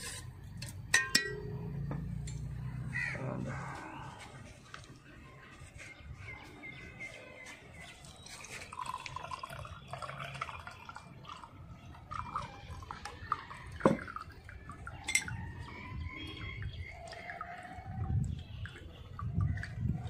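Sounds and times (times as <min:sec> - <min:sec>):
liquid trickling and dripping: 0:07.8 - 0:20.0.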